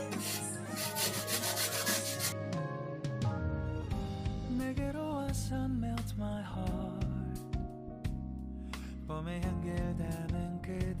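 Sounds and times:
background music: 0.0 - 11.0
root scraping on metal grater: 0.2 - 2.4.

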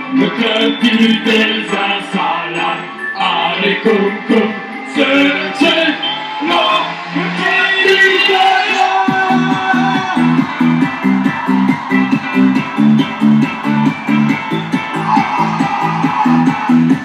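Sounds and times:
band playing plucked-string riff: 7.0 - 17.0.

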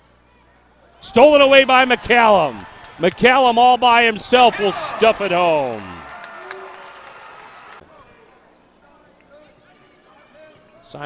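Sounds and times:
crowd noise: 1.0 - 10.8.

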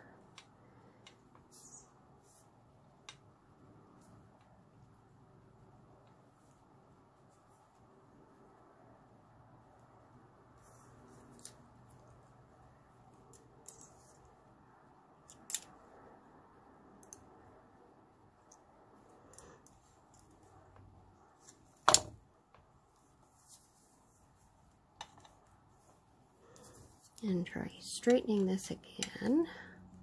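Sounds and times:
pliers clicking on wire: 15.2 - 15.8, 28.0 - 29.4.

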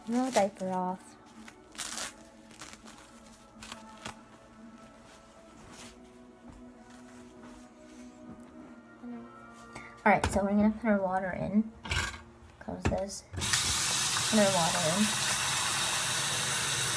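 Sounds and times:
diaper rustling and crinkling: 0.0 - 8.0.

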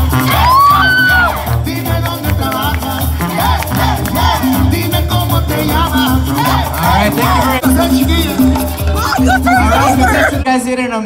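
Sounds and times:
dance song with singing: 0.0 - 10.7.

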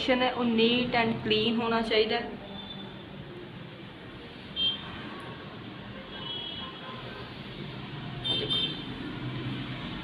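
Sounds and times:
background traffic noise: 0.0 - 10.0
vehicle horn toot: 8.2 - 8.9.

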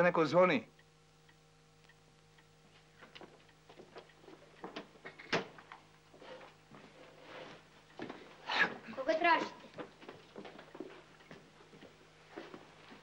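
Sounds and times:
light footsteps on floor: 2.6 - 8.4, 9.3 - 13.0.

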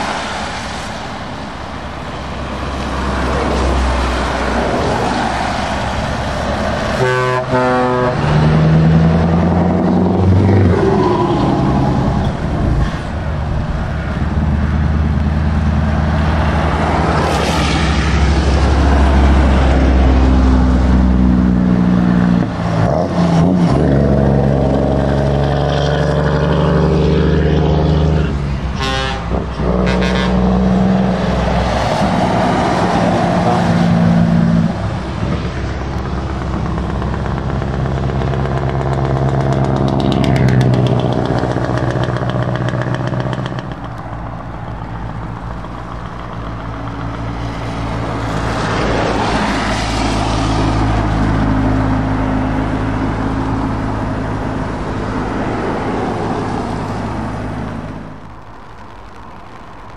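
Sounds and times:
tyres hissing on wet road: 0.0 - 8.7, 10.2 - 21.2, 22.0 - 38.9, 40.8 - 59.9
lorry diesel engines droning: 0.0 - 59.8.

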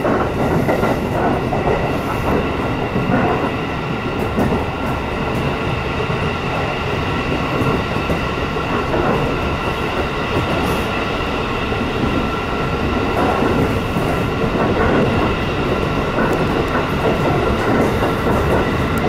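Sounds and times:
train rumbling on rails: 0.0 - 19.0.

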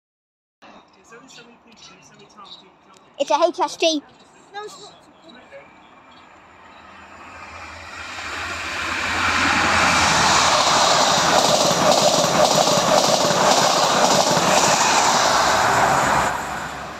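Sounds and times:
train wheels rushing on rail: 6.1 - 16.9.

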